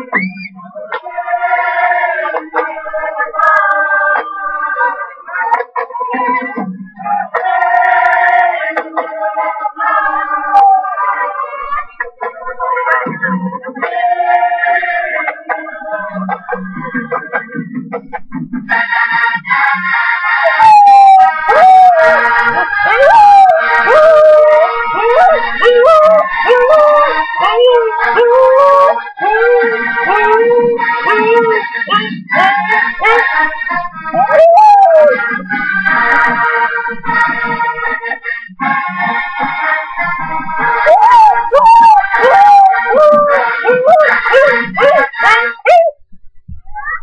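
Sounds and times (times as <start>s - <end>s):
music: 0.0s - 47.0s
husky howling: 10.1s - 11.2s, 20.4s - 33.5s, 34.1s - 35.3s, 40.8s - 46.0s.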